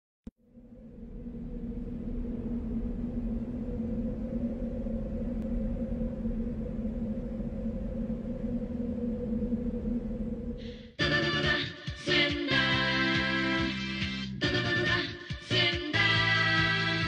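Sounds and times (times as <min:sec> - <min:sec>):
low drone over rumble: 0:00.3 - 0:13.9
dance music: 0:11.0 - 0:17.0.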